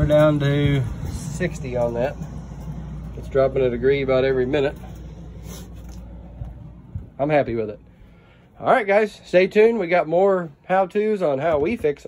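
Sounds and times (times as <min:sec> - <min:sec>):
air conditioner hum: 0:00.0 - 0:12.0.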